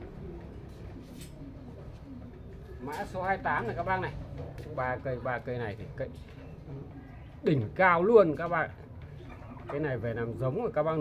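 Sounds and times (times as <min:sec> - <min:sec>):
bird cooing: 0:00.0 - 0:05.2, 0:09.0 - 0:11.0.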